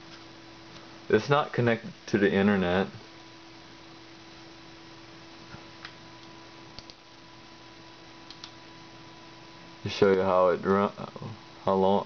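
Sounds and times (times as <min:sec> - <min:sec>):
desktop computer humming: 0:00.0 - 0:12.0
mouse clicks: 0:05.8 - 0:07.0, 0:08.2 - 0:08.6.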